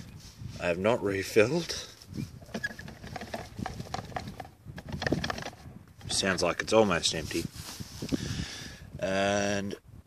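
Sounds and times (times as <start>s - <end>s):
fuel tank knocks and rustles: 2.4s - 6.2s.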